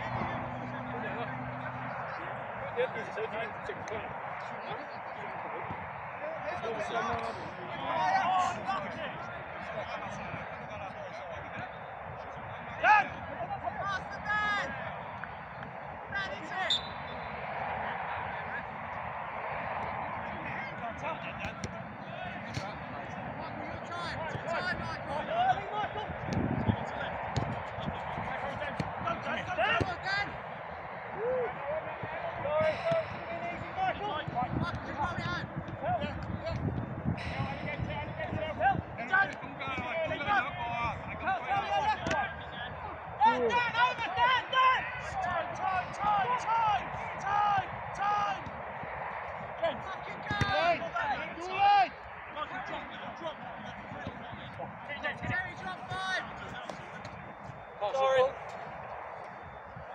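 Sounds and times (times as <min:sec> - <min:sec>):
footballers shouting: 0:00.0 - 0:59.9
outdoor background noise: 0:00.0 - 0:59.9
ball being kicked: 0:27.4 - 0:27.6, 0:56.6 - 0:57.2.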